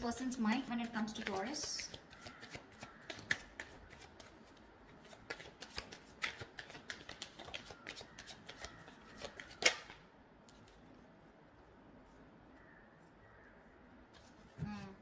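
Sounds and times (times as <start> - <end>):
cards being shuffled: 0.5 - 10.9.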